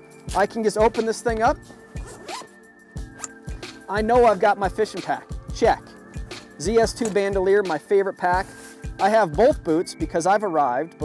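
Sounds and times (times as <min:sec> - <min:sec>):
bag rustling: 0:00.1 - 0:04.6
zipper rasp: 0:01.9 - 0:03.4.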